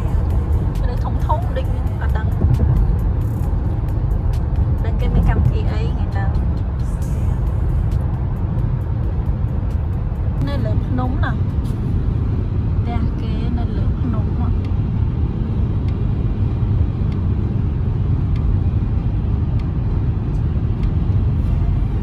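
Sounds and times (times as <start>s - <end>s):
road and engine rumble: 0.0s - 22.0s.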